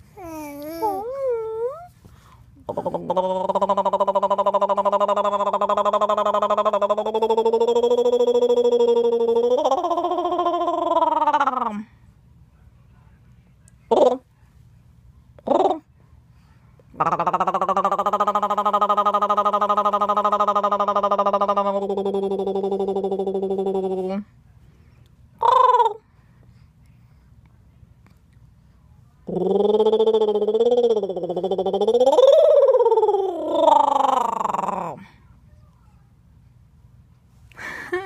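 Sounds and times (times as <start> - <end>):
faint low hum: 0.0 - 38.0
wavering voice-like call: 25.4 - 26.0, 29.3 - 35.0.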